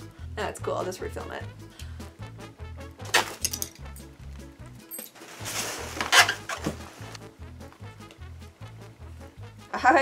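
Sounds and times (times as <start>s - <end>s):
handling rustle and clatter: 4.9s - 7.2s.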